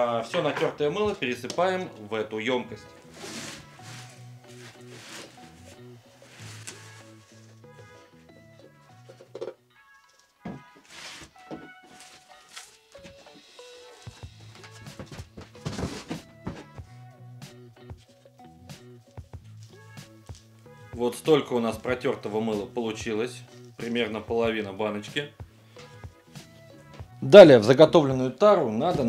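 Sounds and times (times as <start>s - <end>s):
background music held notes: 0.0s - 29.0s
cardboard and plastic thunks: 10.4s - 12.3s, 14.6s - 16.8s.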